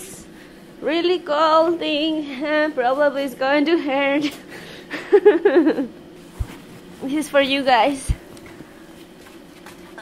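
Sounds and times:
woman laughing: 4.2s - 6.0s.

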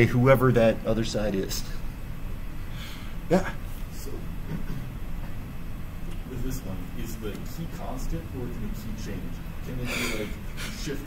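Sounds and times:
low room rumble: 0.0s - 11.0s.

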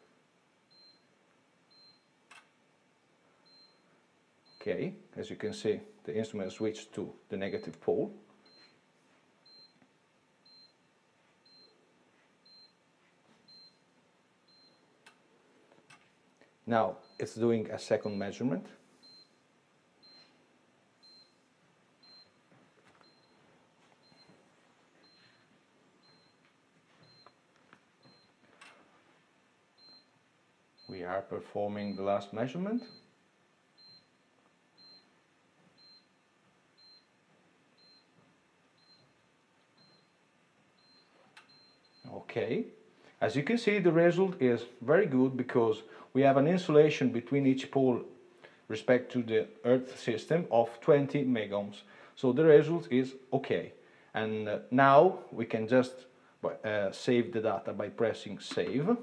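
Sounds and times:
faint high-pitched beeps: 0.7s - 2.2s, 3.4s - 4.8s, 9.4s - 12.8s, 18.0s - 20.4s, 21.0s - 22.4s, 23.0s - 27.4s, 29.8s - 30.2s, 31.8s - 33.2s, 33.8s - 37.2s, 37.8s - 40.2s, 40.8s - 42.4s.

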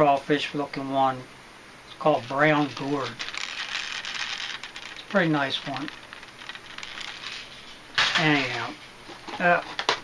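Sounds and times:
faint ticks and crackles: 1.9s - 7.5s
plastic packaging rustling: 2.2s - 10.0s.

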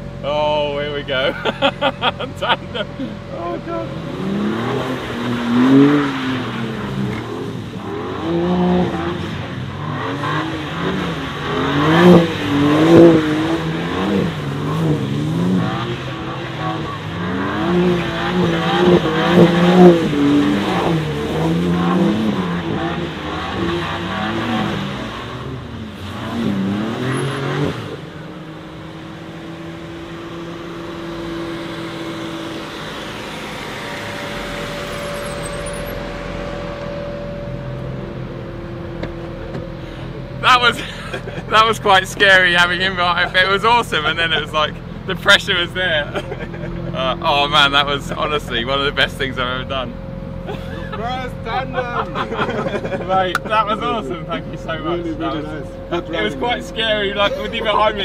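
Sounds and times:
car engines revving: 0.0s - 58.0s
steady engine note: 0.0s - 58.0s.

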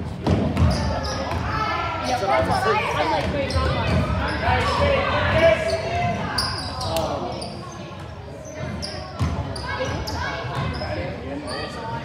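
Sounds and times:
sneakers squeaking on hardwood: 3.2s - 4.6s, 5.6s - 11.8s.

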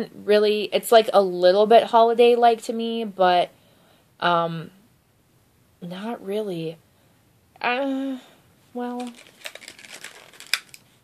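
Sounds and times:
plastic packaging crinkling: 9.0s - 11.0s.

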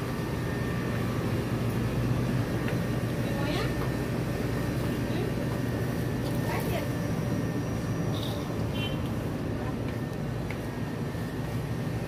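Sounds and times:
low shop hum: 0.0s - 12.0s.

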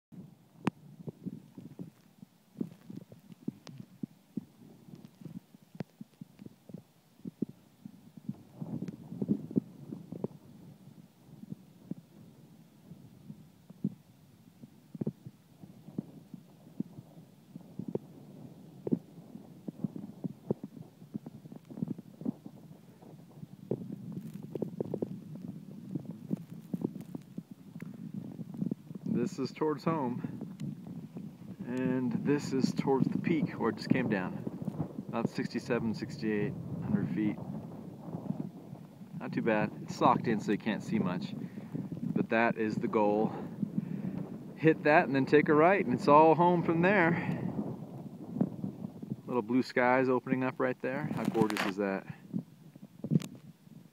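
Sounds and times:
wind gusting against microphone: 0.2s - 53.9s.

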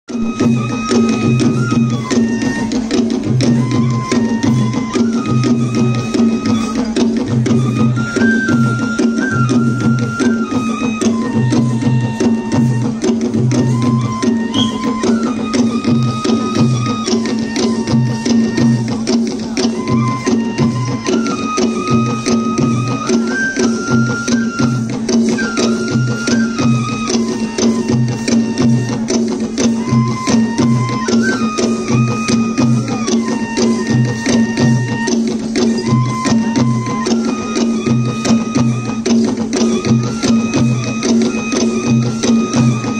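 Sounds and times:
drums beating steady rhythm: 0.1s - 42.9s.

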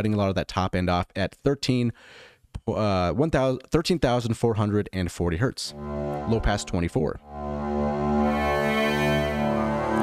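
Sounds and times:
synthesizer sustained string note: 5.7s - 10.0s.

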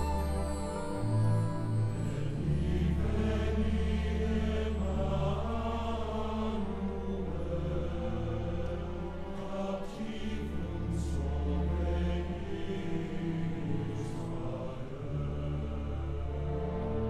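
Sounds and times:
choir singing a carol: 0.0s - 17.0s.

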